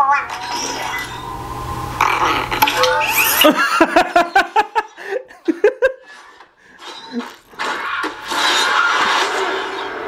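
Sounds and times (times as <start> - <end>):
low hum: 0.1 - 3.6.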